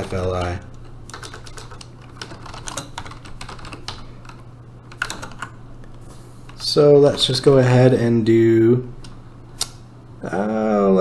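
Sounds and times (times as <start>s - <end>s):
typing on keyboard: 1.1s - 5.6s.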